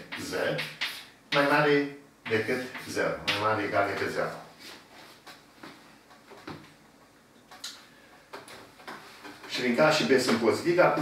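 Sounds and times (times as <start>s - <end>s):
chalk writing on blackboard: 0.1s - 1.6s, 2.3s - 3.0s.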